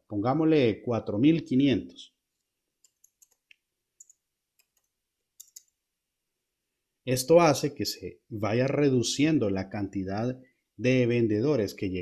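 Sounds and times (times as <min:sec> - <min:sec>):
computer keyboard keys clicking: 0:02.8 - 0:05.7.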